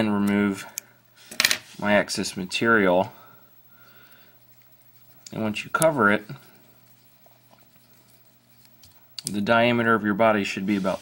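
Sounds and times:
faint low room hum: 0.0 - 11.0.

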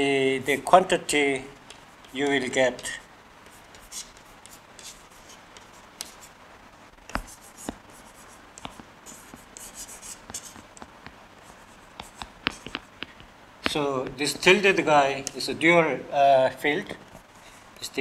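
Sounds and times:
chalk tapping on chalkboard: 3.4 - 6.3, 7.1 - 14.2
chalk scratching on chalkboard: 3.4 - 6.4, 7.1 - 10.9, 11.5 - 13.1.

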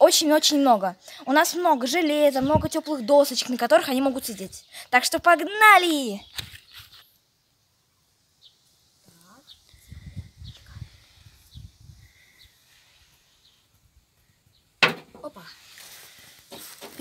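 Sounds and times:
footsteps on grass: 15.2 - 17.0.

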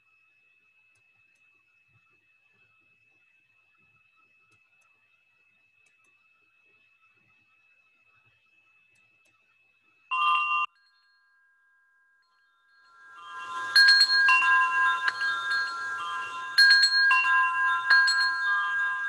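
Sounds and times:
brief tone: 9.7 - 19.0
metal wind chimes ringing: 10.1 - 19.0.

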